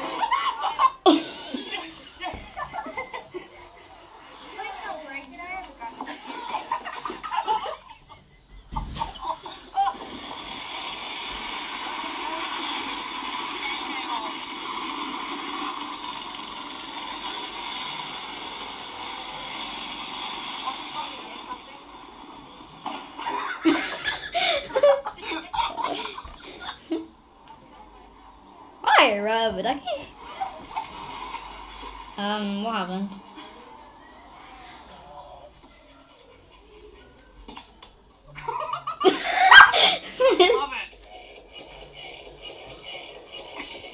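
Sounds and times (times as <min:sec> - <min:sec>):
people laughing: 0:00.0 - 0:04.7, 0:06.0 - 0:10.2, 0:22.8 - 0:27.2, 0:35.5 - 0:43.9
steady droning noise: 0:00.0 - 0:35.8.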